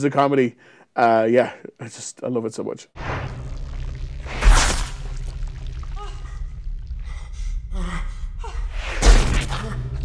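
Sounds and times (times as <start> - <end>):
low sci-fi hum: 3.0 - 10.0.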